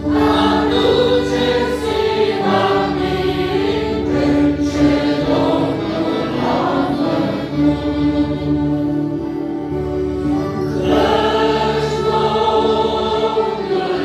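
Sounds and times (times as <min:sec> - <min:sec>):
congregation singing a hymn: 0:00.0 - 0:14.0.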